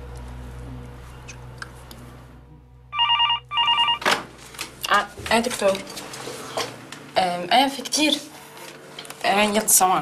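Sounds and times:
desk telephone ringing: 2.9s - 4.1s.

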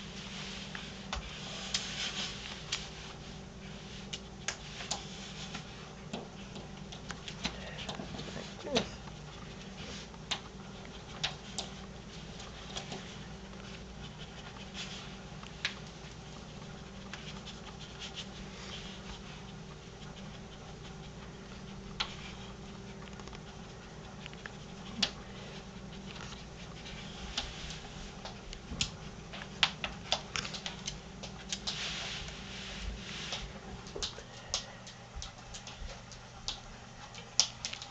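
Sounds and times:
animal rustling under fabric: 0.0s - 6.0s, 31.5s - 33.8s
low steady hum: 0.0s - 37.9s
claws clicking and scratching: 0.7s - 32.5s, 33.3s - 37.9s.

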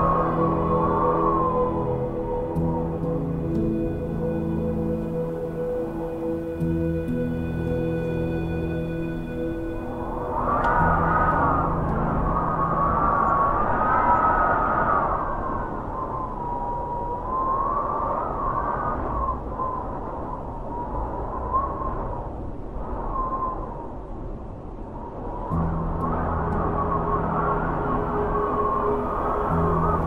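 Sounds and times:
wind howling in gusts: 0.0s - 30.0s.

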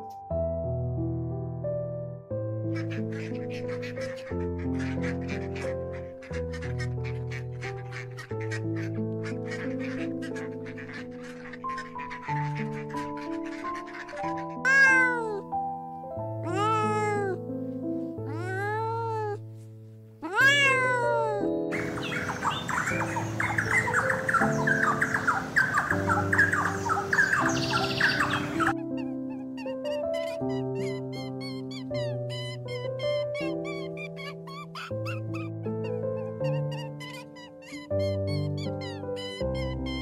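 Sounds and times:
soft background music: 0.0s - 40.0s
cat meowing: 14.2s - 15.6s, 16.4s - 17.4s, 18.2s - 19.4s, 20.2s - 22.0s, 29.0s - 40.0s.

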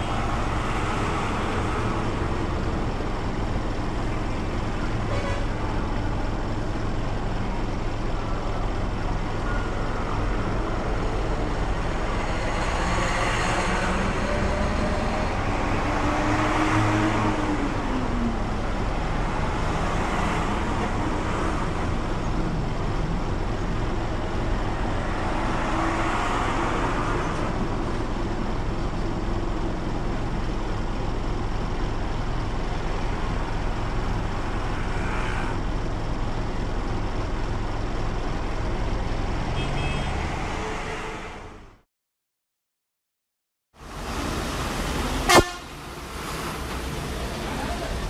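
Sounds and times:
engine rumble and road noise: 0.0s - 41.9s, 43.7s - 48.0s
passing bus and traffic: 0.0s - 41.9s, 43.7s - 48.0s
vehicle cabin rumble and hiss: 43.8s - 48.0s
short horn toot: 45.3s - 45.7s.

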